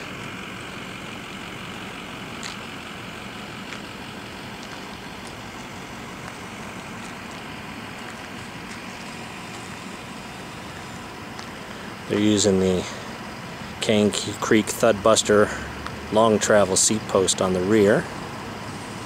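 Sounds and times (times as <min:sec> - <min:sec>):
low hum: 0:00.0 - 0:16.2.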